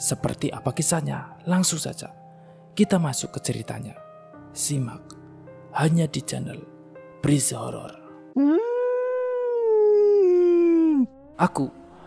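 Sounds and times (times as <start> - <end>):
dog howling: 8.4 - 12.0.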